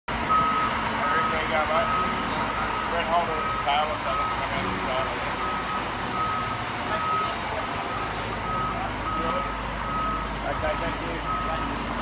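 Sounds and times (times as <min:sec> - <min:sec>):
high electronic beeps: 0:05.4 - 0:11.7.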